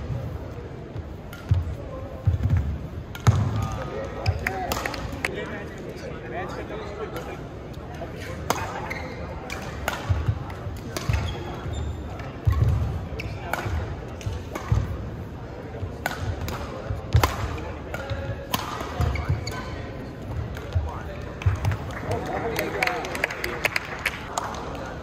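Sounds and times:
racket striking shuttlecock: 2.4 - 5.3, 8.5 - 15.0, 15.9 - 19.7.

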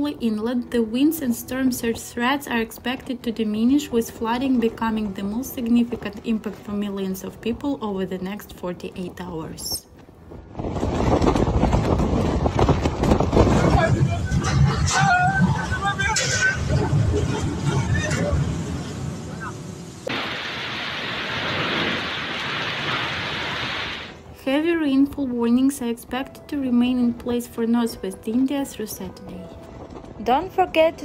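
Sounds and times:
storm wind buffeting microphone: 10.3 - 19.5
heavy rain hiss: 18.2 - 24.3.

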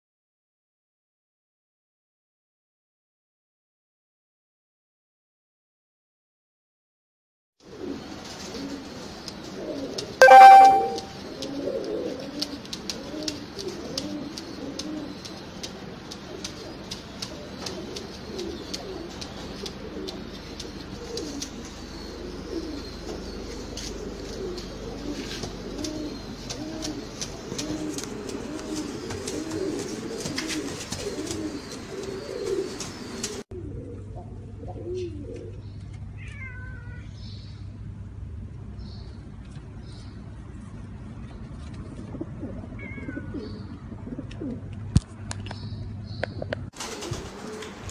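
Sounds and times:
pigeons cooing: 7.7 - 35.7, 41.8 - 44.7, 46.2 - 47.9.

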